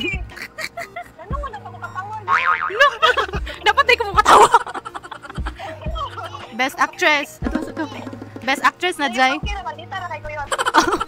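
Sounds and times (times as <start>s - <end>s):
laughter: 0.0s - 3.6s, 4.2s - 6.5s, 10.5s - 11.0s
soft background music: 0.0s - 11.0s.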